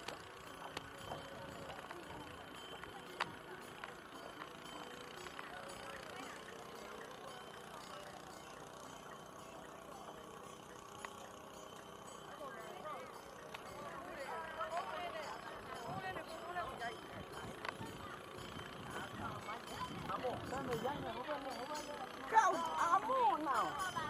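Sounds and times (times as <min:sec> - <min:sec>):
faint indistinct voices: 0:00.0 - 0:24.0.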